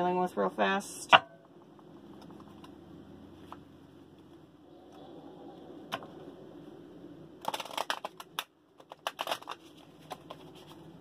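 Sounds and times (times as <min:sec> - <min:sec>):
cards being shuffled: 0:07.4 - 0:11.0.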